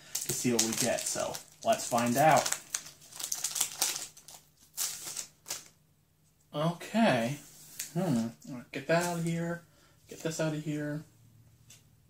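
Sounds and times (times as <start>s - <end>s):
wrapper rustling: 0.0s - 5.8s.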